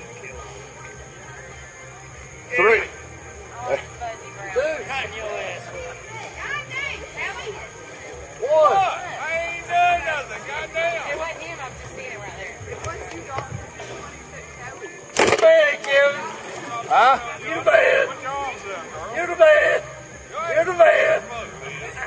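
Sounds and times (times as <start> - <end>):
voices calling and talking: 0.0 - 22.0.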